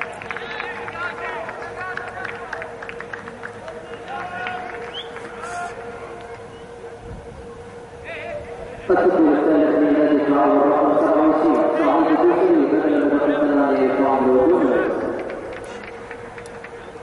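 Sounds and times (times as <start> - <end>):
distant shouts and chatter: 0.0 - 17.0.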